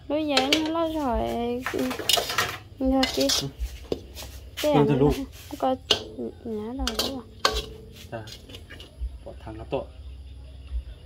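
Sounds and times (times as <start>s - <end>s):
metal spatula scraping wok: 0.2s - 9.0s.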